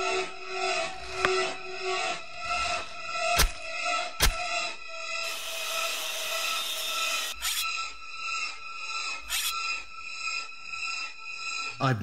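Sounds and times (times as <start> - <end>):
blade grinding sawing: 2.5 - 7.8.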